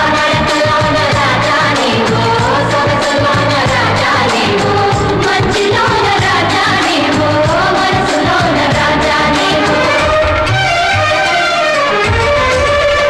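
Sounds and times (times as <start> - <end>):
instrumental backing: 0.0 - 13.0
percussion beat: 0.0 - 13.0.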